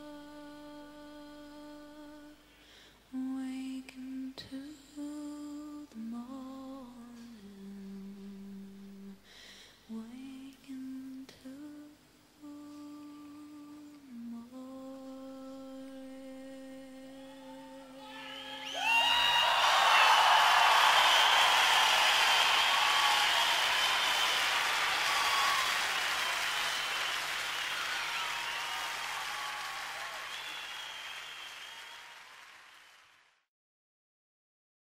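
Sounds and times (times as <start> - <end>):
woman humming: 0.0 - 2.4, 9.9 - 18.8
audience applause and cheers: 18.0 - 33.3.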